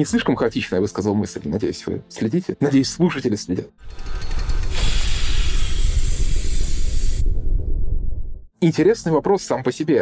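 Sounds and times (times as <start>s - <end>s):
deep rumble: 4.0s - 8.5s
loud steam-like hiss: 4.7s - 7.4s.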